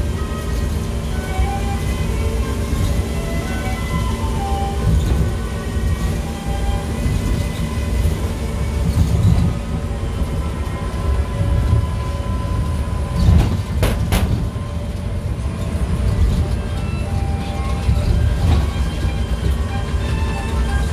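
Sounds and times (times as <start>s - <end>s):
monorail car rumbling: 0.0s - 20.9s.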